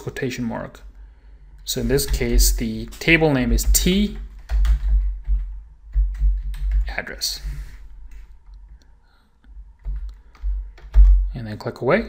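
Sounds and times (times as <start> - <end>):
typing on keyboard: 2.0 - 7.0, 9.8 - 11.3.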